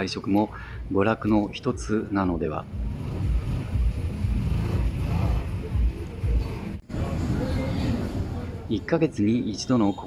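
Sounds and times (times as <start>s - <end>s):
road noise low rumble: 0.0s - 9.3s
vehicle engines: 0.0s - 9.3s.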